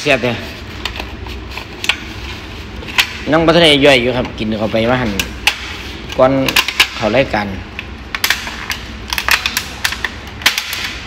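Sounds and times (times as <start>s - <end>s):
hard objects clicking and tapping: 4.1s - 11.0s.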